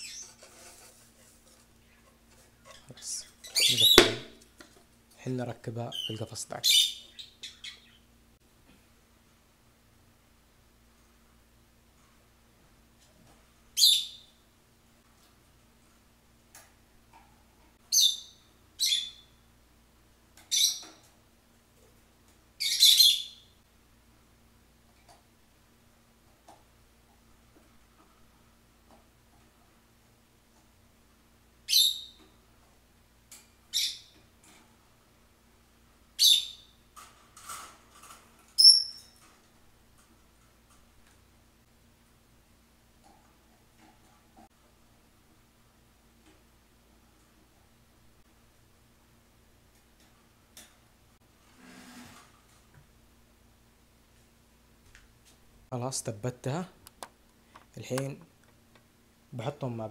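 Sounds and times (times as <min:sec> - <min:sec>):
lovebird shrill calls: 0:03.4 - 0:04.4, 0:13.8 - 0:14.3, 0:31.7 - 0:32.2, 0:36.2 - 0:36.7, 0:38.6 - 0:39.2
parrot shrill calls: 0:22.6 - 0:23.4, 0:31.7 - 0:32.1, 0:38.6 - 0:39.1.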